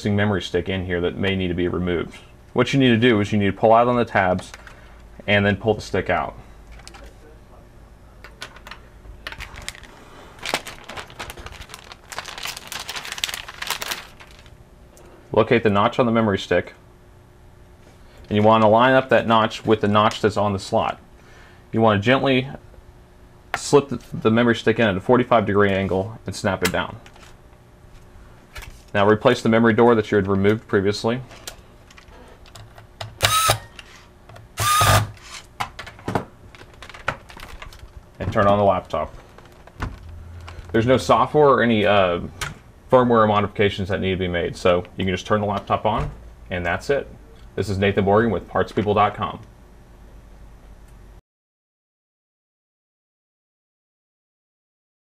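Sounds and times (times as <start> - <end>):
anti-static bag crinkling: 8.3 - 14.6, 36.4 - 41.1
electric screwdriver running: 33.2 - 33.7, 34.6 - 35.2.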